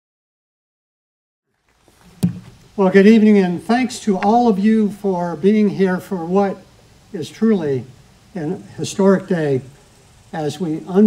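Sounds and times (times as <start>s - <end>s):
sharp knock: 2.2s - 2.6s
man speaking into a microphone: 2.8s - 9.8s, 10.4s - 11.0s.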